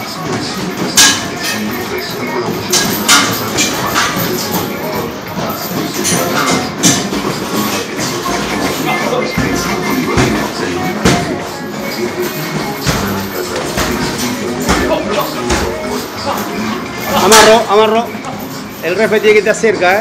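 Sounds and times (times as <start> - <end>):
music playing: 0.0 - 20.0.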